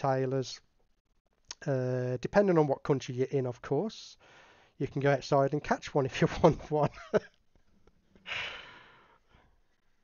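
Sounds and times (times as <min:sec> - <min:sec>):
man exhaling breathily: 0:08.2 - 0:09.6.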